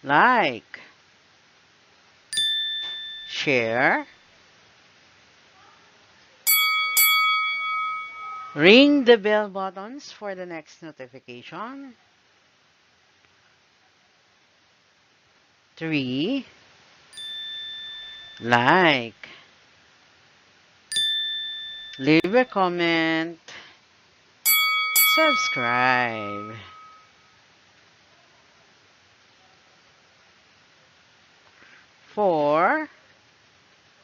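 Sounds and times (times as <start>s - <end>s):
bell chime: 2.4s - 3.4s, 6.5s - 8.8s, 17.2s - 18.5s, 20.9s - 22.4s, 24.5s - 27.1s
bright electronic ding: 2.4s - 3.4s, 6.5s - 8.7s, 17.2s - 18.4s, 20.9s - 22.3s, 24.5s - 27.1s.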